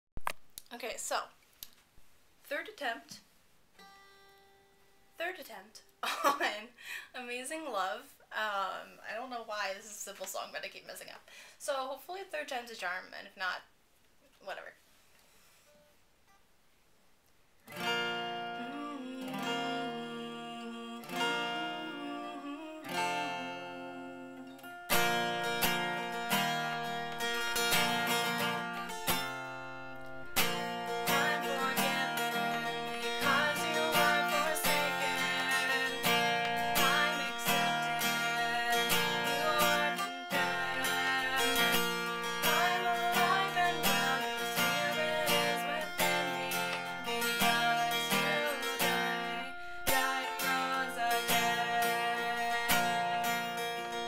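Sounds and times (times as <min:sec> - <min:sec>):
acoustic guitar strumming: 0:03.8 - 0:05.6, 0:17.7 - 0:54.0
woman singing: 0:18.2 - 0:24.8, 0:30.1 - 0:54.0.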